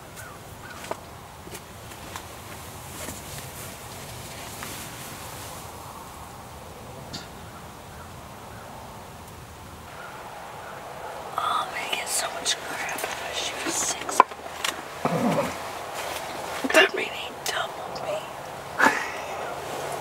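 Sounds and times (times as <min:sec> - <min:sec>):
person whispering: 0:11.0 - 0:20.0.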